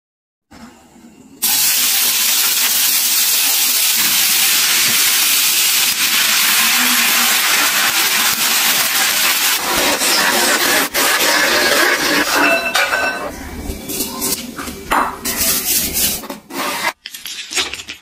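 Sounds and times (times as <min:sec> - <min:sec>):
batter sizzling on hot griddle: 0:01.4 - 0:11.3.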